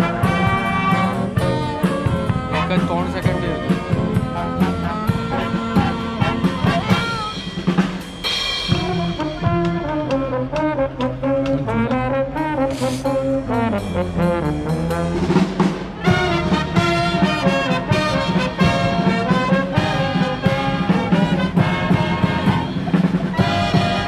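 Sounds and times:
drum beat: 0:00.0 - 0:11.6, 0:14.7 - 0:24.0
brass band playing: 0:00.0 - 0:24.0.

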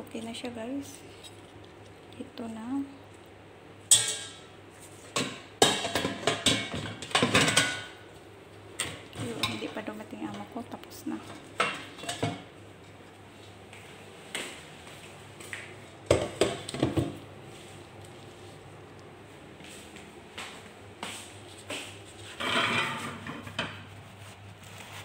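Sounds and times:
dishes and utensils clattering: 0:03.9 - 0:04.5, 0:05.1 - 0:08.0, 0:08.8 - 0:10.5, 0:11.2 - 0:13.0, 0:22.4 - 0:23.9.

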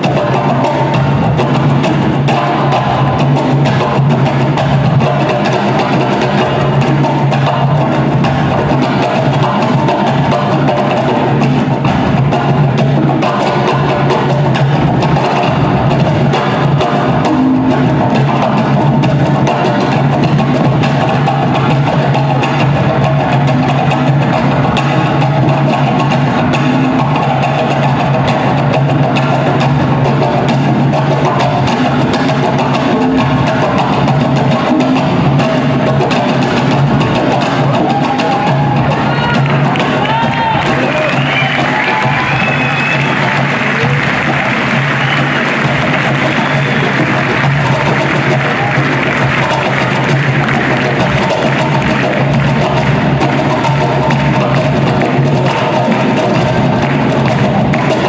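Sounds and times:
box drums struck by hand: 0:00.0 - 0:58.0.

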